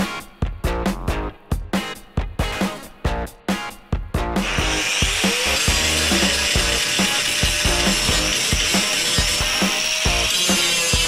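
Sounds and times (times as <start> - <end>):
background music with a beat: 0.0 - 11.0
angle grinder grinding steel: 4.4 - 11.0.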